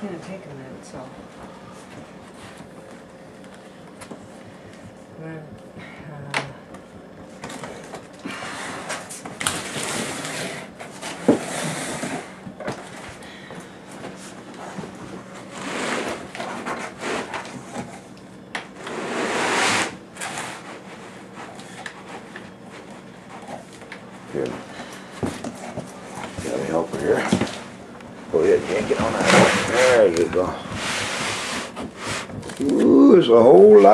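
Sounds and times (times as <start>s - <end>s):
cardboard box scraping: 8.3s - 12.3s, 18.8s - 20.7s, 28.4s - 32.6s.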